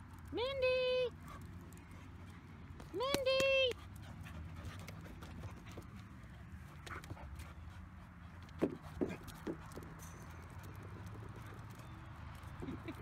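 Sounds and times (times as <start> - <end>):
dogs panting: 1.1 - 13.0.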